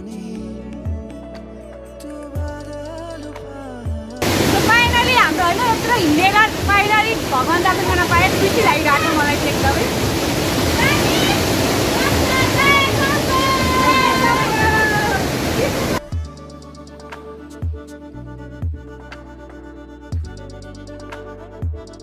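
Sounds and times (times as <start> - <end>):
background music with a beat: 0.0 - 4.2, 16.0 - 22.0
stream cascading over rocks: 4.2 - 16.1
people calling out: 10.7 - 16.0.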